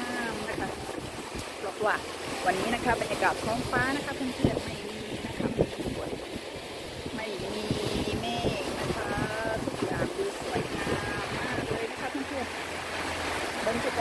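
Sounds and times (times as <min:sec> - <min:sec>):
water rushing along hull: 0:00.0 - 0:14.0
wind buffeting microphone: 0:00.0 - 0:14.0.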